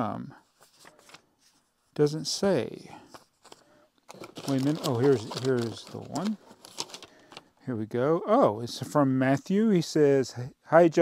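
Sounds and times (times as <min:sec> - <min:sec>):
packing paper crinkling: 0:03.1 - 0:07.5.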